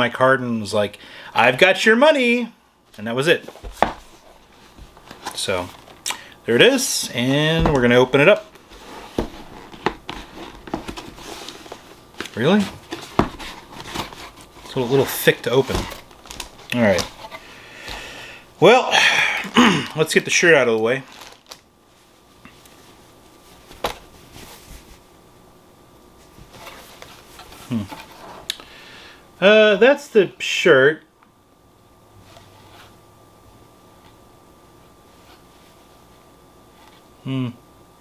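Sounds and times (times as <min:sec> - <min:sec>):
fabric and packaging rustling: 0:07.2 - 0:18.0, 0:19.5 - 0:25.1.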